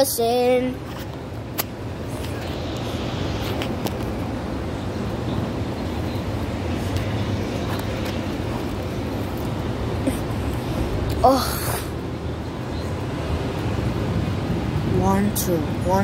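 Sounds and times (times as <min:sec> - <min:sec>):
road traffic rumble: 0:00.0 - 0:16.0.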